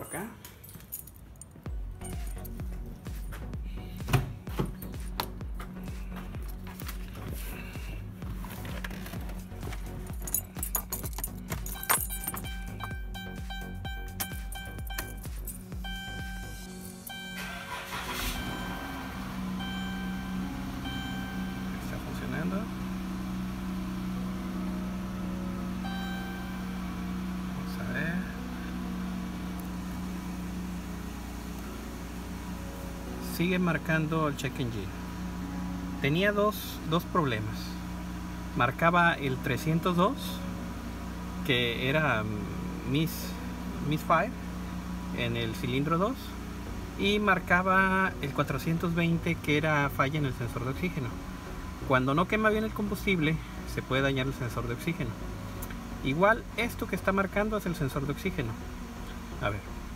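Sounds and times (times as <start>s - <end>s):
keys jangling: 0.0s - 2.5s, 9.7s - 13.0s
car engine starting and idling: 0.1s - 59.9s.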